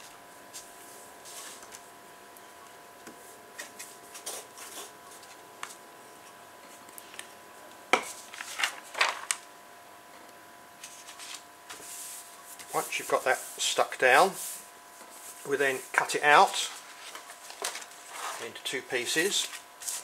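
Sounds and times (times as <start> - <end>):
paper rustling: 8.2 - 9.4, 10.8 - 13.4, 16.4 - 18.6, 19.2 - 20.0.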